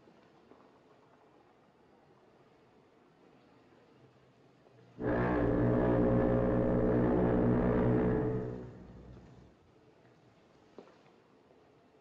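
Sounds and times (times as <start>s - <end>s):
ship's foghorn blast: 5.0s - 9.5s.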